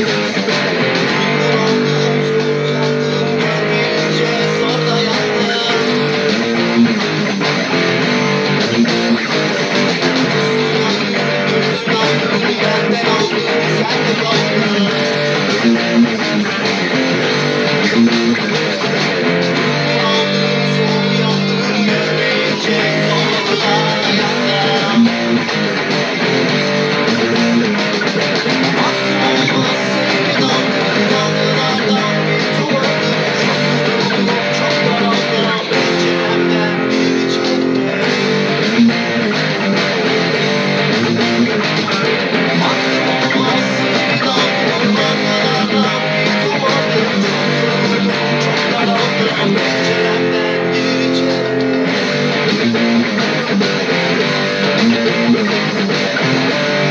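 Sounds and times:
bass and backing music: 0.0s - 56.9s
electric guitar playing rock: 0.0s - 56.9s.

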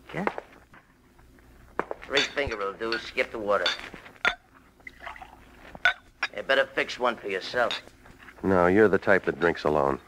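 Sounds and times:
glass clink: 2.1s - 4.5s, 5.8s - 6.4s, 7.6s - 7.9s
liquid trickling into glass: 4.8s - 5.6s.

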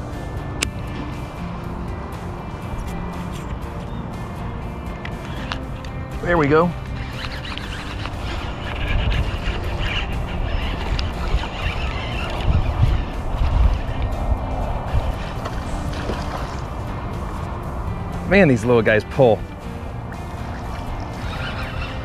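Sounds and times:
background music: 0.0s - 22.0s
wind rumbling on microphone: 0.0s - 22.0s.

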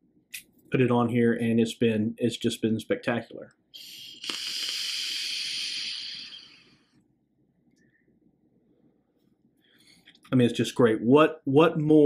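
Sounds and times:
vape air hissing: 3.8s - 6.8s.

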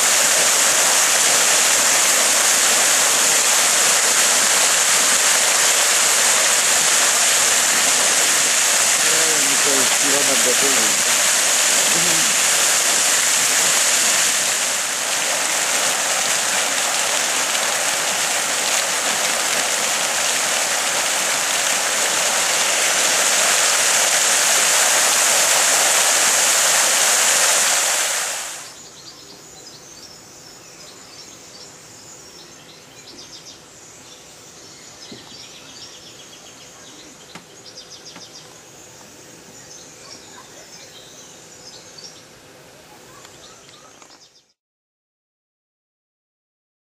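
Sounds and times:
fountain jets splashing into basin: 0.0s - 28.8s.

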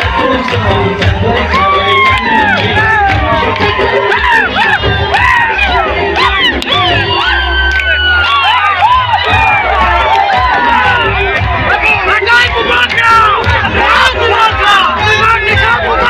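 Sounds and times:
crowd cheering and whooping: 0.0s - 16.0s.

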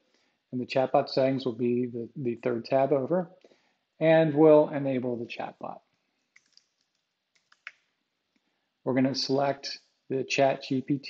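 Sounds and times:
computer keyboard keystrokes: 6.3s - 7.8s.

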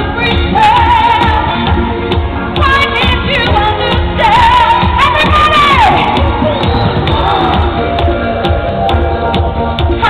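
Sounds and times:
disco band playing: 0.0s - 10.0s
woman singing: 0.0s - 10.0s.

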